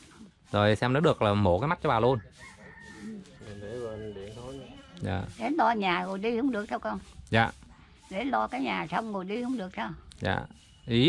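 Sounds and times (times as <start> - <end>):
rooster crowing: 2.0 - 4.8.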